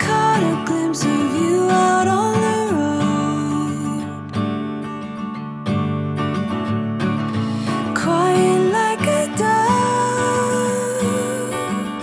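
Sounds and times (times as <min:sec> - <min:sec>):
acoustic guitar background music: 0:00.0 - 0:12.0.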